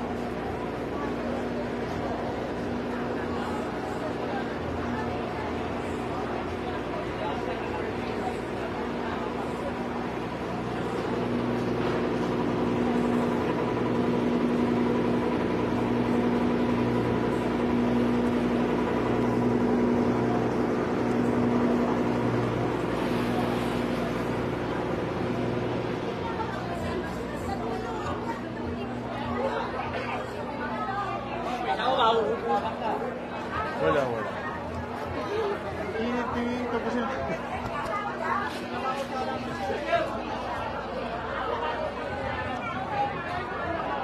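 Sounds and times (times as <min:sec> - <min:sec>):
background chatter: 0:00.0 - 0:44.0
machine humming: 0:05.2 - 0:37.3.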